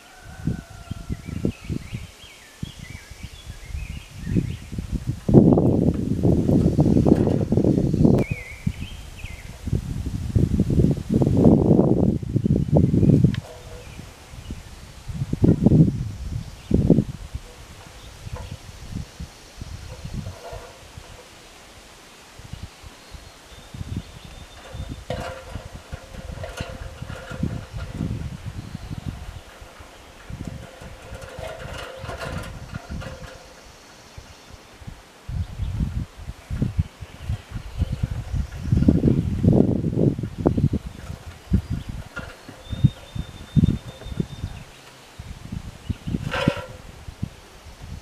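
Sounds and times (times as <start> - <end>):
leaves rustling: 0.0 - 48.0
wind gusting over microphone: 0.0 - 48.0.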